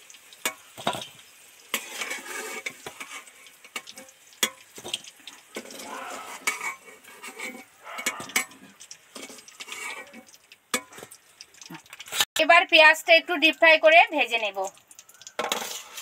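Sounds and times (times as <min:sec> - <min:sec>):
frying oil hissing: 0:00.0 - 0:16.0.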